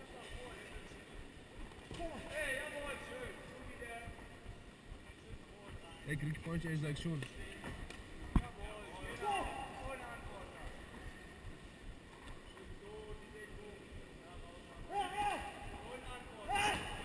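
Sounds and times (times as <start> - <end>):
faint hall noise: 0.0 - 17.0
indistinct shouted voices: 16.4 - 17.0.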